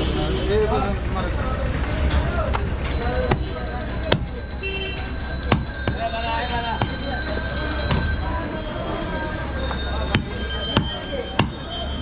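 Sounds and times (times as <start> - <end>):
knife striking wooden block: 5.5 - 6.0, 10.1 - 11.6.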